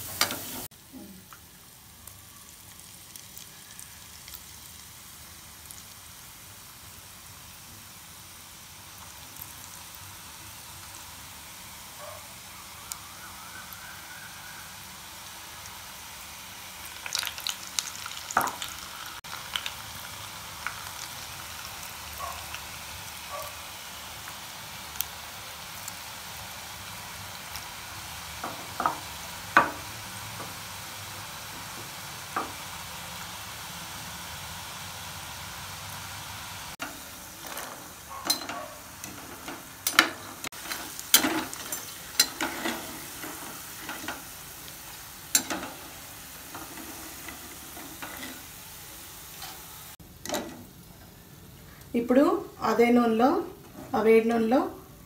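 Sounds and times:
peanuts sizzling in hot oil: 0.0 - 55.0.

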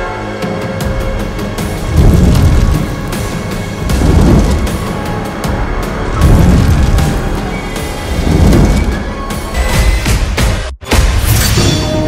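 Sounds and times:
deep rumble: 1.5 - 9.4.

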